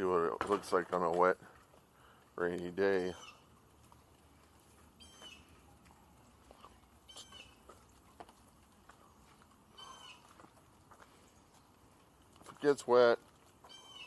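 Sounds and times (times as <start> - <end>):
bird chirps: 3.1 - 3.5, 5.0 - 5.6, 6.5 - 8.1, 9.0 - 10.4, 13.6 - 14.0.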